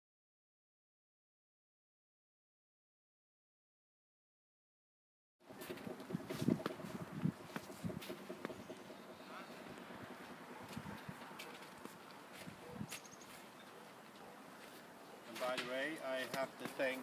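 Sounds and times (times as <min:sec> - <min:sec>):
footsteps on snow: 0:09.2 - 0:15.6.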